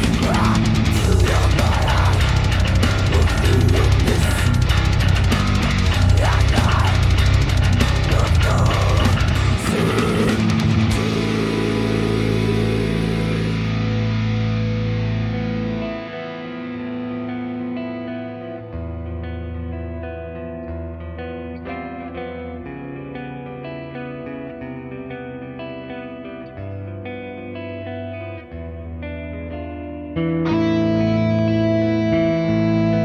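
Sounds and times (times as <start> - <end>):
heavy metal band playing: 0.0 - 17.6.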